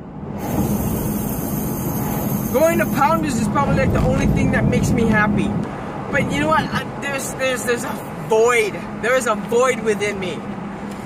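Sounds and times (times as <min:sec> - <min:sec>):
car cabin road and engine noise: 0:00.0 - 0:11.0.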